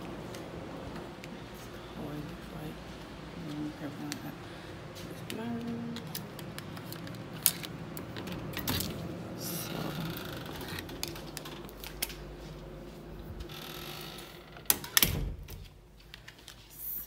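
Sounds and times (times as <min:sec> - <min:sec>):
door lock clicks: 0:14.6 - 0:15.7.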